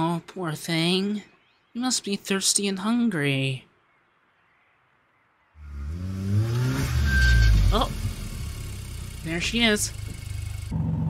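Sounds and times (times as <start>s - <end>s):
car engine running: 5.6s - 11.0s.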